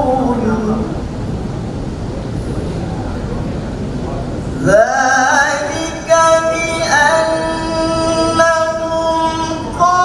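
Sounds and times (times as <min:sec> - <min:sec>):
low rumble and hiss of hall ambience: 0:00.0 - 0:10.0.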